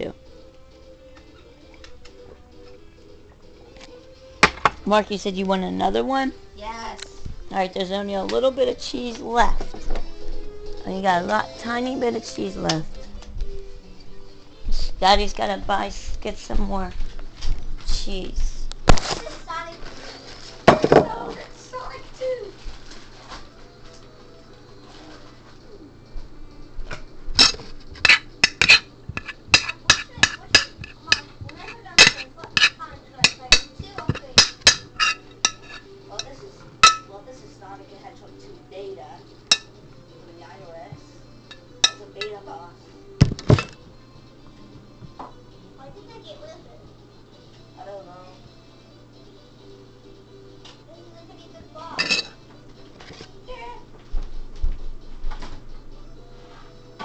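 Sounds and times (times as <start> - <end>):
dishes and utensils clattering: 20.2 - 21.4, 26.9 - 37.1, 39.5 - 39.8, 41.5 - 42.4, 43.3 - 43.8, 52.0 - 53.3.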